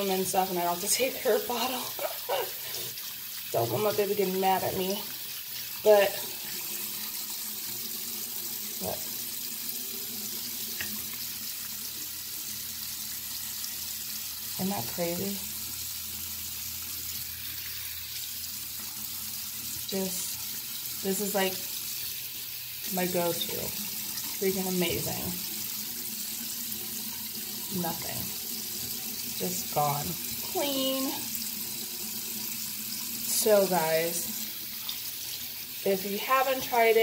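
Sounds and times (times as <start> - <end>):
tap water running into sink: 0.0 - 37.0.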